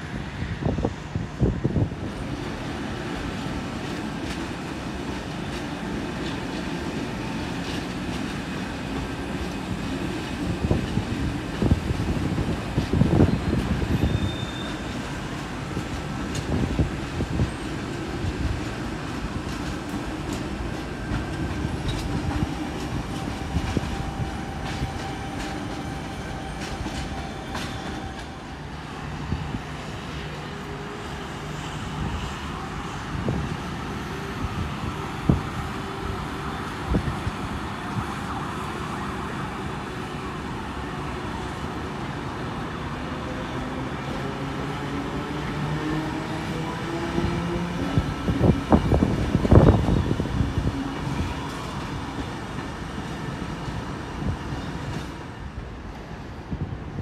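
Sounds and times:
faint train whine: 0.0 - 57.0
train rumbling on tracks: 0.0 - 57.0.

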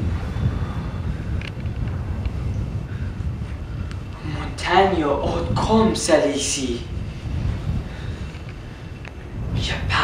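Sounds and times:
low wind rumble: 0.0 - 10.0.

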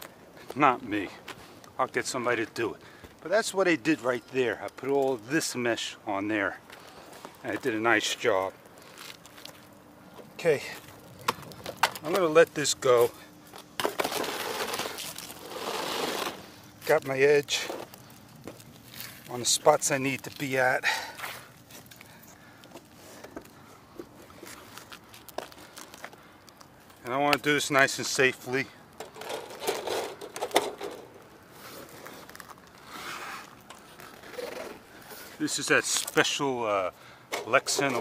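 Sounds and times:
rustling and scraping on roof shingles: 6.6 - 27.6, 29.0 - 38.0.

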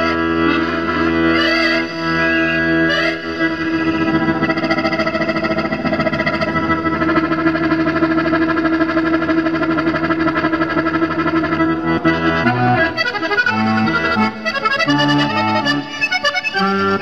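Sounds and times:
accordion pulsing chord: 0.0 - 17.0.

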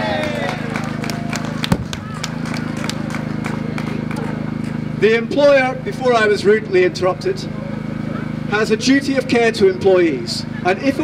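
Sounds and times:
long held shout: 0.0 - 2.4
people clapping: 0.0 - 4.9.

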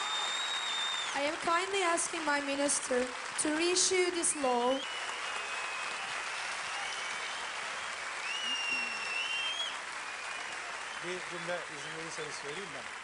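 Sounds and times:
audience applauding: 0.0 - 13.0
thin high whistle-like tones: 8.2 - 10.5.

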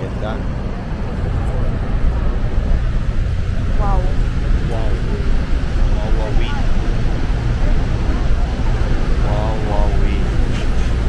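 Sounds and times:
waterfall rumble: 0.0 - 11.0.

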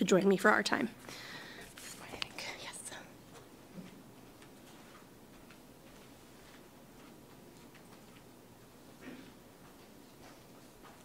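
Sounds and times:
faint clicks and ticks: 1.6 - 8.9
person whispering: 1.8 - 3.2.

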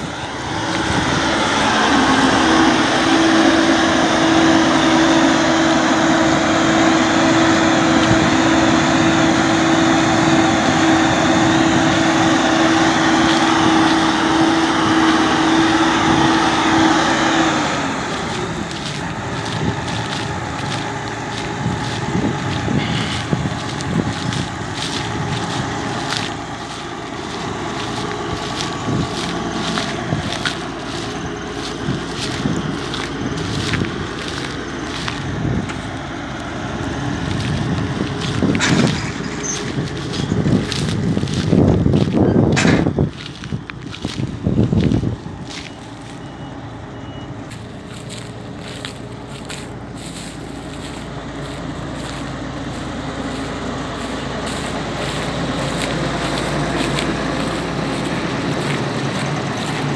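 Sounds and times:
combine harvester engine: 0.0 - 59.9
loud steady whine: 0.0 - 59.9.

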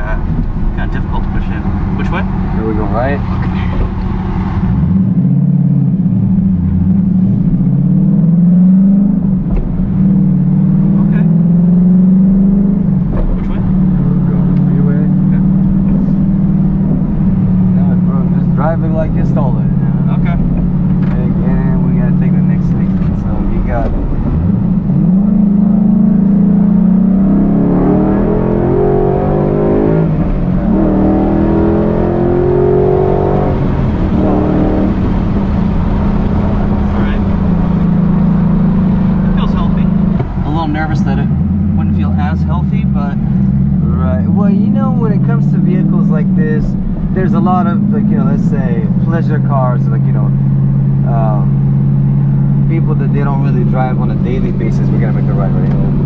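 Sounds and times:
car engine accelerating: 0.0 - 56.0.

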